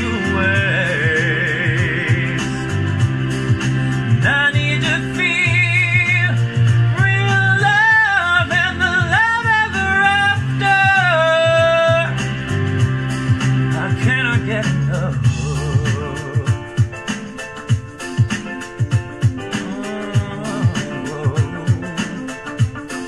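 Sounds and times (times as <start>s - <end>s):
man singing wordless notes: 0.0s - 3.1s, 4.0s - 12.5s, 13.7s - 17.0s, 19.4s - 23.0s
backing track with chords and beat: 0.0s - 23.0s.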